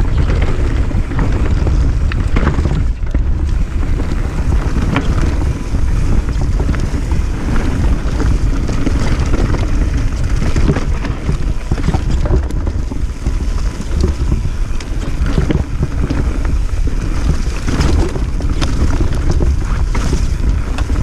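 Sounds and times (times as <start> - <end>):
bike rattles and knocks: 0.0 - 21.0
bike tyres rumbling on dirt: 0.0 - 21.0
wind buffeting microphone: 0.0 - 21.0.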